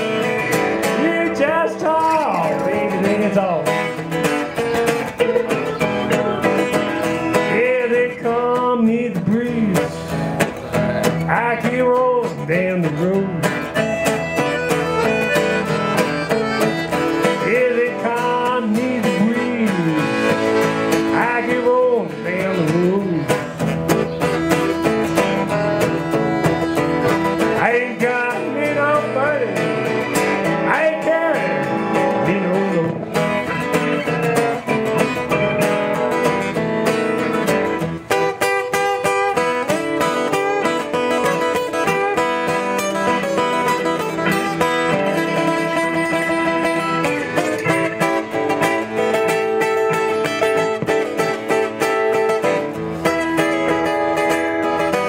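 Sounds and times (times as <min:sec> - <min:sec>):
acoustic guitar strumming: 0:00.0 - 0:55.0
held keyboard notes: 0:00.0 - 0:55.0
lead guitar bending notes: 0:00.0 - 0:55.0.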